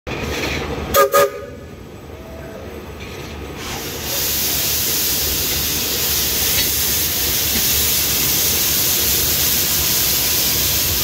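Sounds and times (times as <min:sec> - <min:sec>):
steam locomotive whistle toots: 0:00.9 - 0:01.6
steam venting hiss: 0:03.6 - 0:11.0.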